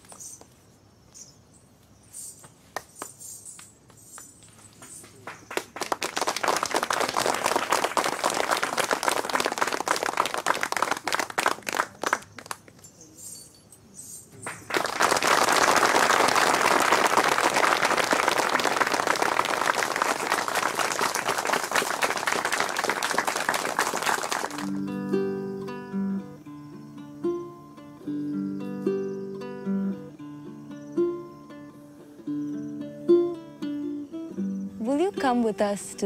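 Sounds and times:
audience applauding: 0:05.2 - 0:12.7, 0:14.5 - 0:24.8.

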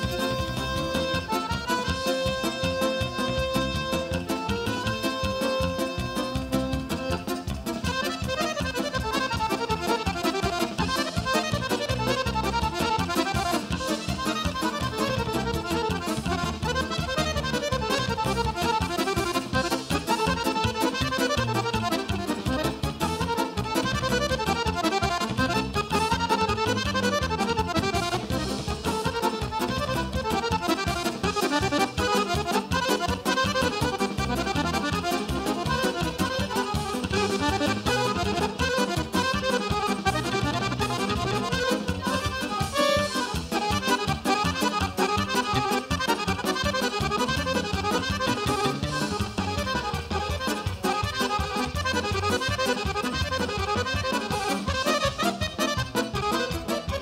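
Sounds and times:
band accompanying: 0:00.0 - 0:57.0
button accordion playing folk tune: 0:00.0 - 0:57.0.

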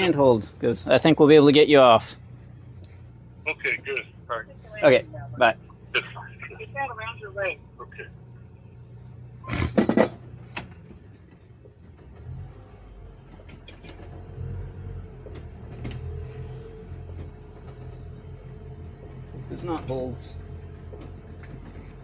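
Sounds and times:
outboard engines running: 0:00.0 - 0:22.0
loud clatter of knocks: 0:09.7 - 0:12.3.

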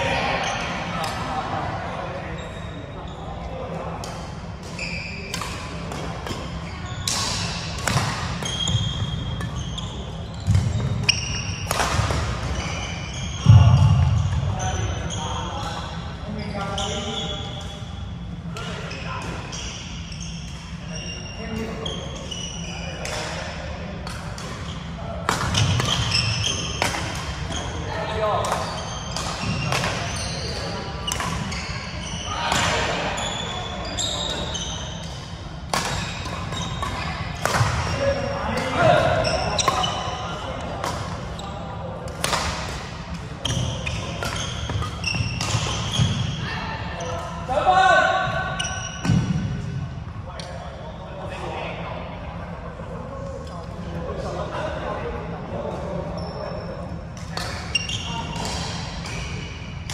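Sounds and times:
rackets hitting shuttlecock: 0:04.0 - 0:09.6, 0:10.4 - 0:12.7, 0:24.0 - 0:27.8, 0:28.4 - 0:31.5, 0:34.3 - 0:41.3, 0:42.0 - 0:46.3.

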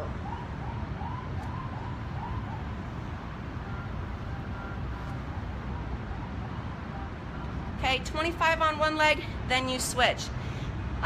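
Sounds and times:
emergency vehicle siren: 0:00.0 - 0:07.8
low outdoor rumble: 0:00.0 - 0:11.0.

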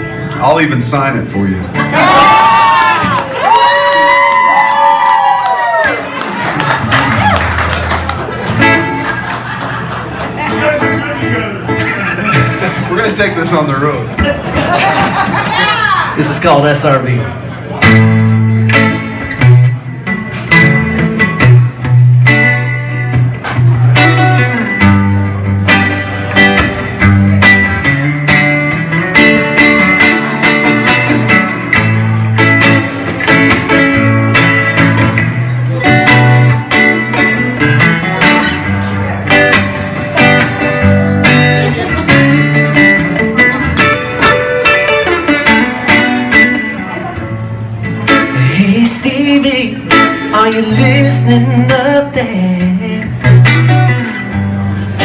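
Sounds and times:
acoustic guitars playing blues: 0:00.0 - 0:55.0
person singing: 0:48.3 - 0:53.4.

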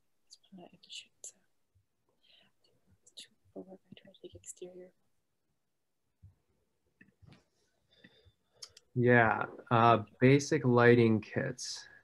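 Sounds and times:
person whispering: 0:00.3 - 0:01.4, 0:03.1 - 0:04.9.

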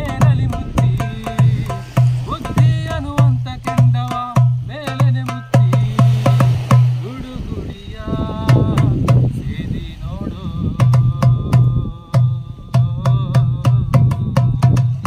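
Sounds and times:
hand drum playing rhythm: 0:00.0 - 0:07.1, 0:08.4 - 0:09.4, 0:10.8 - 0:15.0
man singing: 0:00.0 - 0:15.0.

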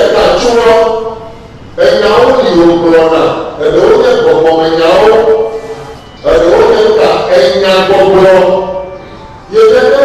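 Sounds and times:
man speaking loudly: 0:00.0 - 0:05.6, 0:06.2 - 0:10.0.

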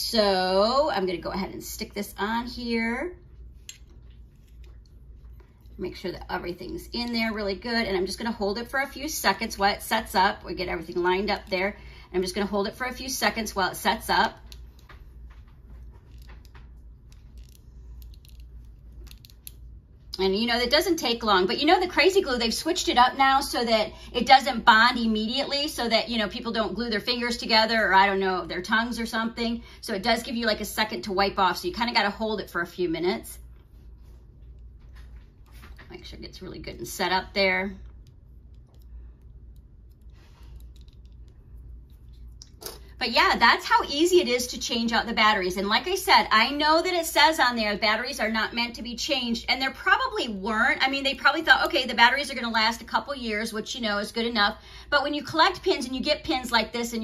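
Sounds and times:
low room hum: 0:00.0 - 0:57.0.

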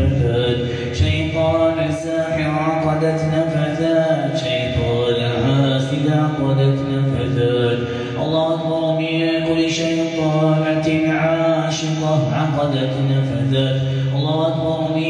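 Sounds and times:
man chanting recitation: 0:00.0 - 0:15.0.

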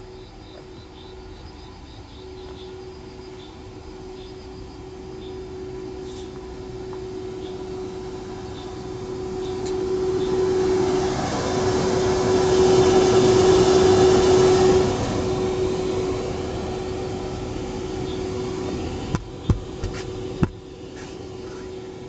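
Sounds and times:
electric blower humming: 0:02.2 - 0:22.0
sharp taps: 0:19.1 - 0:20.6.

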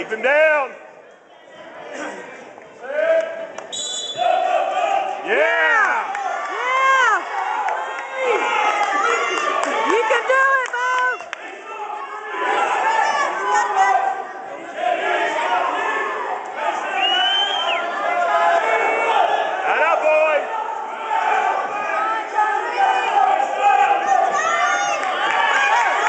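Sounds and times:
spectators shouting: 0:02.9 - 0:26.0.

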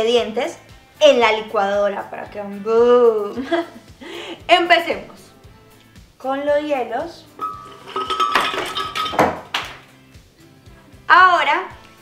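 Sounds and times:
ice cubes clattering into glass jar: 0:07.4 - 0:09.3.

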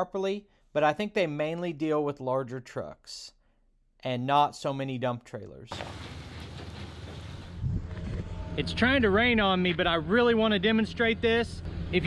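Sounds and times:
outdoor hiss: 0:05.7 - 0:07.6
truck engine running: 0:05.7 - 0:07.6
loud low rumble: 0:06.9 - 0:10.3.

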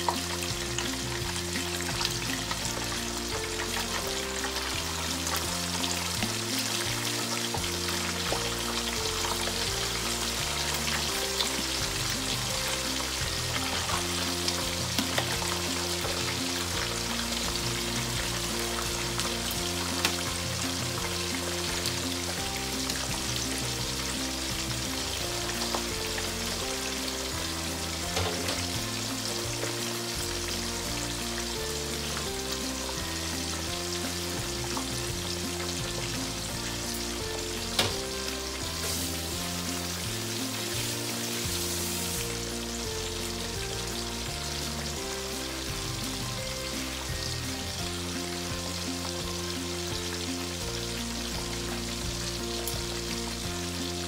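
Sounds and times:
background music with sustained chords: 0:00.0 - 0:54.0
fish sizzling in hot oil: 0:00.0 - 0:54.0.

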